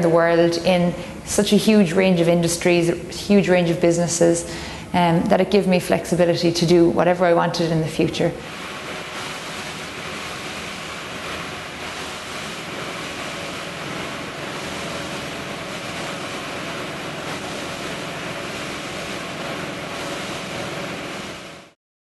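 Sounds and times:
machinery rushing noise: 0:08.3 - 0:21.8.

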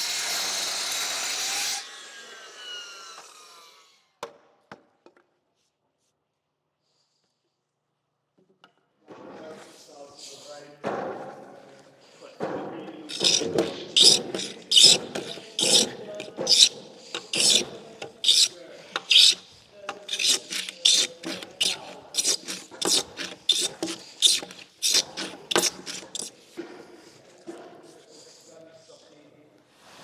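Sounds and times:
hand tool scraping wood: 0:13.1 - 0:28.5.

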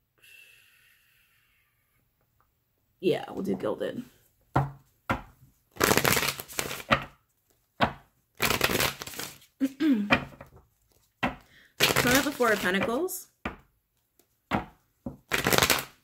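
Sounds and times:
cards being shuffled: 0:05.7 - 0:13.0, 0:15.1 - 0:16.0.

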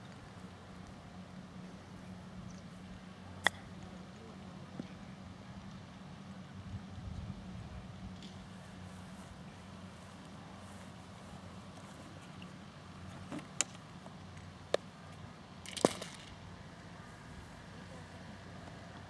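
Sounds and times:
putters striking golf balls: 0:03.4 - 0:05.0, 0:08.2 - 0:08.6, 0:12.2 - 0:16.8.

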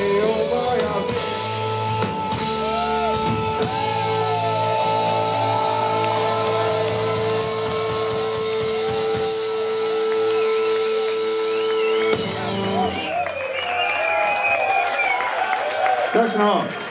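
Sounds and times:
punk rock band playing: 0:00.0 - 0:13.3
crowd cheering and clapping: 0:00.0 - 0:16.9.

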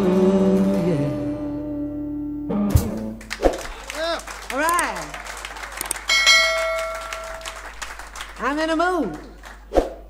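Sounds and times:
bell-like ding: 0:06.1 - 0:07.5.

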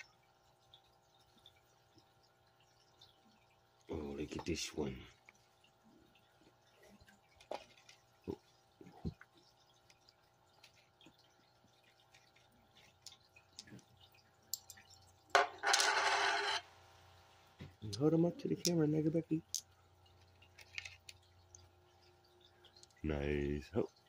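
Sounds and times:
coins and pebbles clicking: 0:15.3 - 0:16.6.

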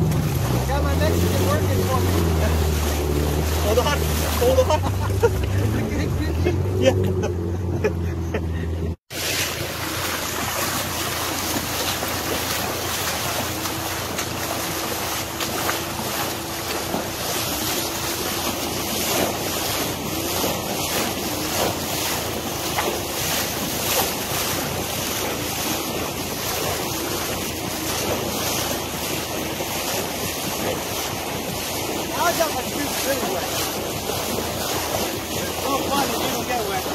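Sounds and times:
river water rushing: 0:00.0 - 0:07.7, 0:09.1 - 0:36.9
low engine hum: 0:00.0 - 0:36.9.

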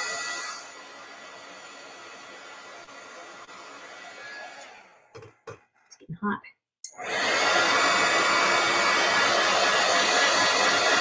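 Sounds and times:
heat tool blowing: 0:00.0 - 0:05.1, 0:07.0 - 0:11.0.

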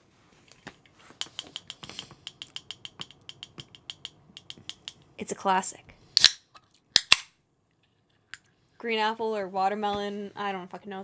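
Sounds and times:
fingers clicking on drink can: 0:01.2 - 0:05.0.

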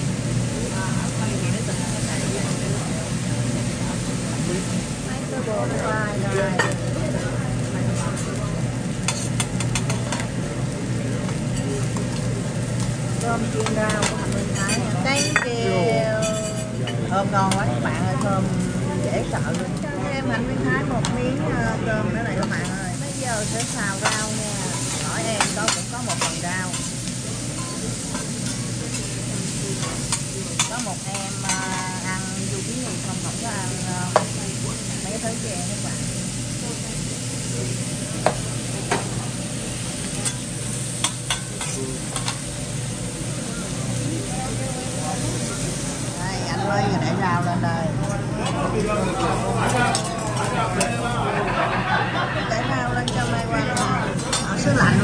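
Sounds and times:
vegetables sizzling on griddle: 0:00.0 - 0:54.4
restaurant voices: 0:00.0 - 0:55.0.

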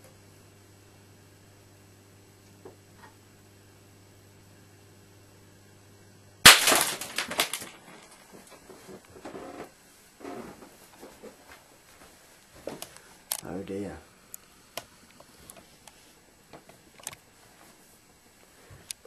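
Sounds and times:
electrical lamp hum: 0:00.0 - 0:19.0
lamp bursting with loud bang: 0:06.4 - 0:07.7.

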